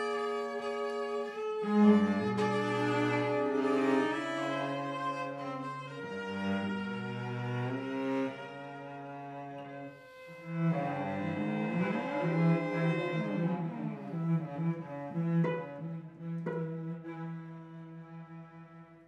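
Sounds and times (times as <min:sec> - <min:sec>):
cello quartet playing: 0:00.0 - 0:19.0.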